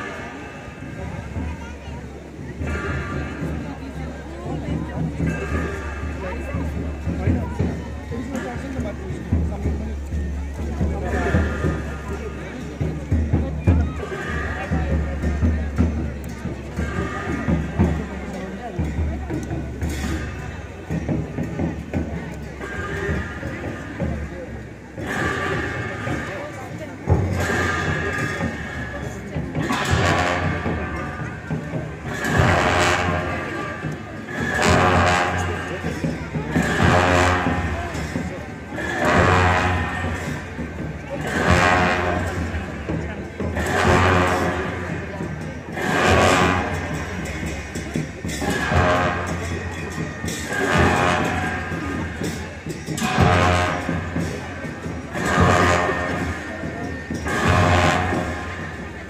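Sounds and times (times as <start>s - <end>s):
drum strokes: 0.0s - 59.0s.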